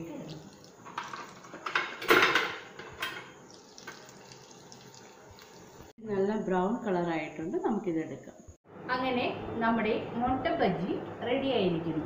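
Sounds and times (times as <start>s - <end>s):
food deep-frying in hot oil: 0.0s - 6.0s.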